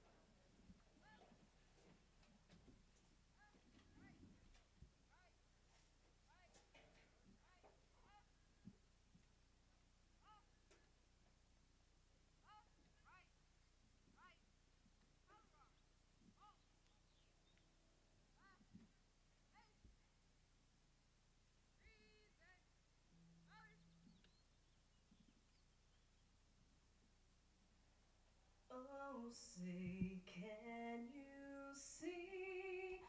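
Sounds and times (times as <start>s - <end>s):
faint bird chirps: 15.3s - 18.7s, 23.1s - 26.5s.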